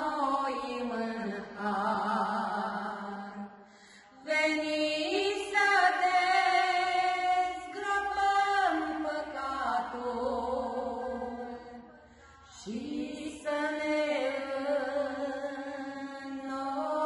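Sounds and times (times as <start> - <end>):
women singing a hymn: 0.0 - 17.0.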